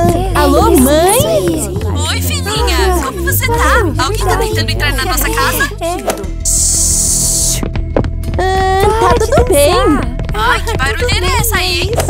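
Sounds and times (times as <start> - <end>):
background music: 0.0 - 12.0
loud hiss: 6.4 - 7.6.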